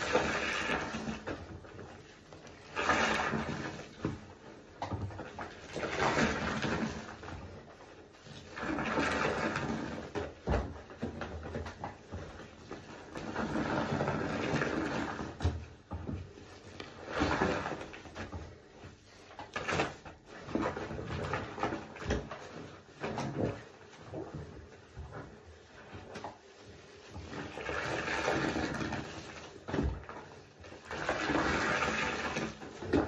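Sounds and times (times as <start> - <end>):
soapy sponges squelching: 0.0 - 33.0.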